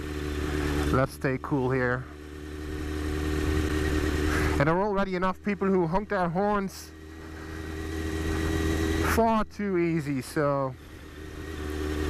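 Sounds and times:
motorcycle engine running: 0.0 - 12.0
wind and road noise: 0.0 - 12.0.

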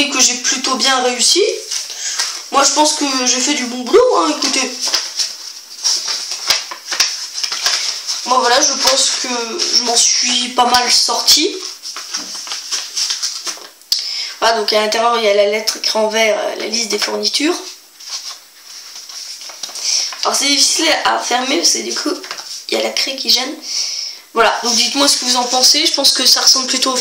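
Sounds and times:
paper rustling: 0.0 - 13.8, 16.5 - 23.0, 24.4 - 27.0
steady hiss: 0.0 - 15.8, 16.6 - 27.0.

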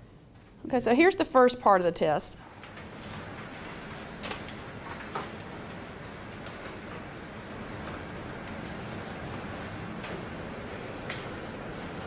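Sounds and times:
classroom room noise: 1.4 - 12.0
faint clicks and rustles: 2.4 - 12.0.

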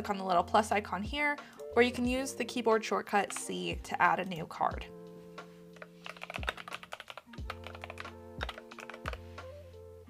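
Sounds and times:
soft background music: 0.0 - 10.0
typing on computer keyboard: 3.2 - 3.5, 5.8 - 9.2.

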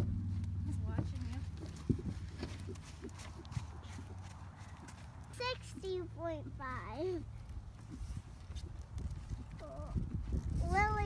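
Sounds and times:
horse hooves trotting on sand: 0.0 - 11.0.

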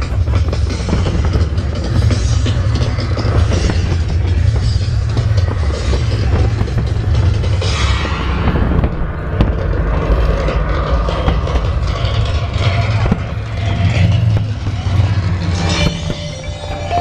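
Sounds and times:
fireworks bangs and crackling: 0.0 - 17.0
fireworks rumble: 0.0 - 17.0.

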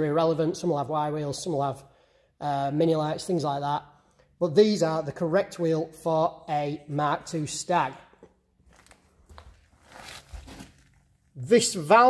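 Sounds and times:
faint scuffs and clicks: 8.0 - 11.1.

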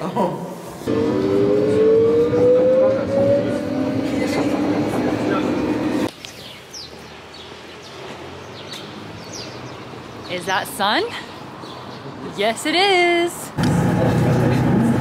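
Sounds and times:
quiet street ambience: 0.0 - 15.0
low train hum: 0.9 - 6.1
train motor whine rising: 0.9 - 6.1.

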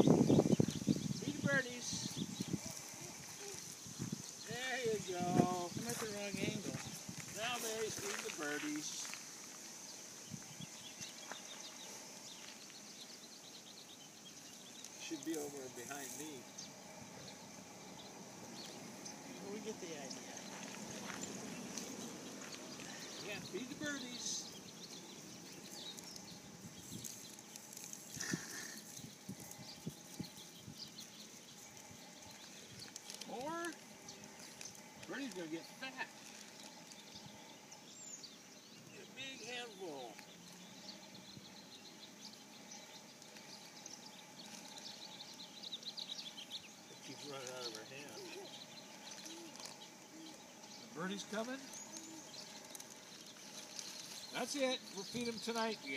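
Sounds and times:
small birds chirping: 0.0 - 55.9
footsteps on gravel: 0.4 - 13.0, 18.6 - 37.4, 47.0 - 55.9
plastic bag rustling: 31.6 - 37.1, 47.0 - 50.1, 51.0 - 55.6.

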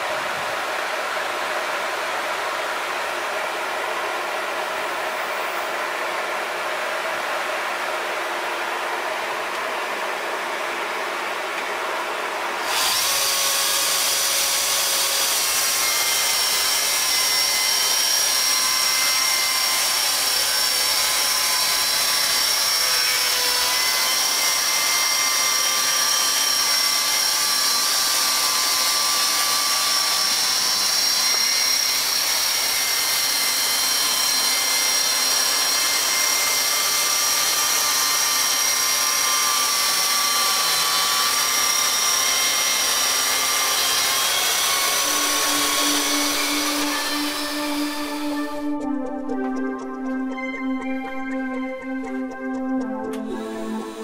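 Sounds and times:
electric chainsaw cutting log: 11.5 - 48.8, 53.1 - 54.0.

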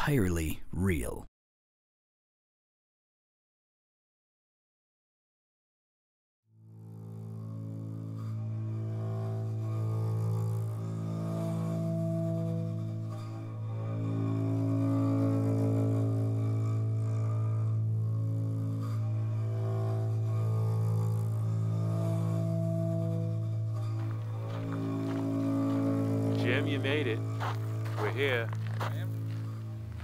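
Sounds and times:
low sustained drone music: 6.6 - 30.0.

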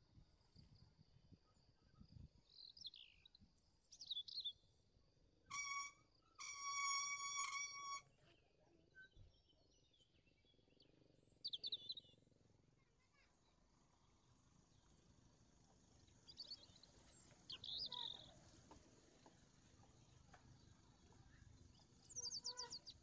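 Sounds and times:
birds chirping: 9.0 - 12.2, 15.8 - 23.0.

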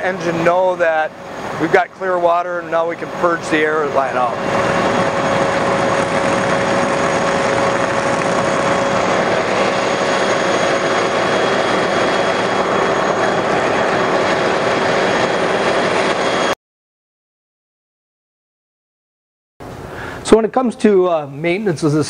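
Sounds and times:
fire hose water rushing: 0.0 - 16.2.

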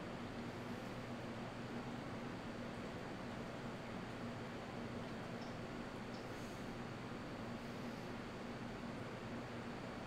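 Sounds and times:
electric fans running: 0.0 - 10.0.

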